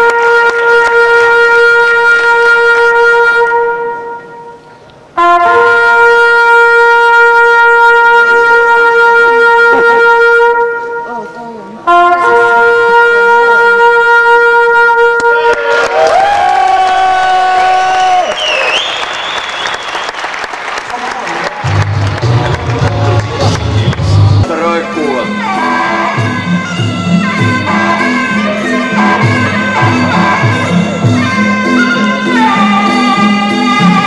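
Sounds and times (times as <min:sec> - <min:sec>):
reedy oboe-like pipe: 0:00.0 - 0:18.3, 0:23.4 - 0:34.0
crowd voices: 0:20.9 - 0:34.0.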